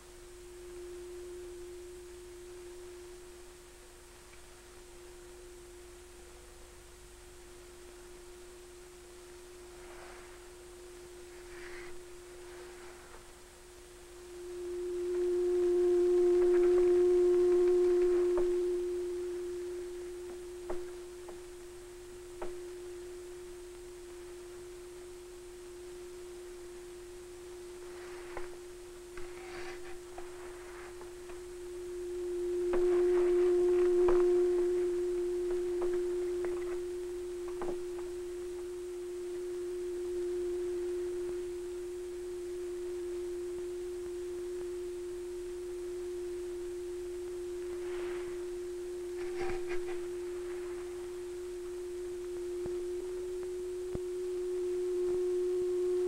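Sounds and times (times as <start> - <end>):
steady pure tone: 0.0 - 56.0.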